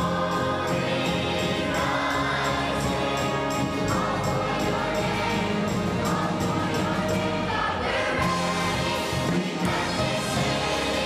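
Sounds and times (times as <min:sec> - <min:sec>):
group of young singers: 0:00.0 - 0:11.0
music with a steady beat: 0:08.2 - 0:11.0.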